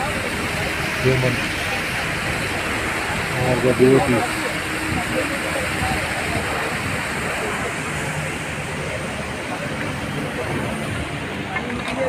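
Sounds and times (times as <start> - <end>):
faint voices: 0.0 - 12.0
rushing mountain water: 0.0 - 12.0.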